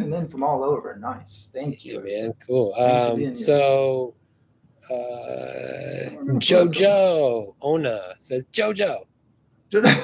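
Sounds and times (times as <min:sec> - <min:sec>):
man saying uhh: 0:04.9 - 0:06.8.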